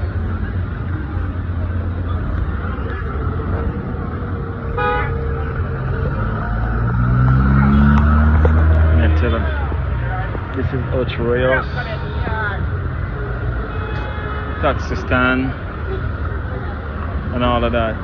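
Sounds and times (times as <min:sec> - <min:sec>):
car engines rumbling: 0:00.0 - 0:18.0
vehicle engine revving: 0:01.3 - 0:10.9
car horn toot: 0:04.7 - 0:05.4.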